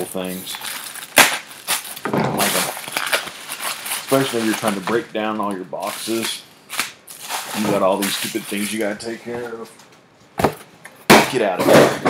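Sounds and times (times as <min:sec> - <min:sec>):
plastic packing bags crinkling: 0:00.1 - 0:08.9.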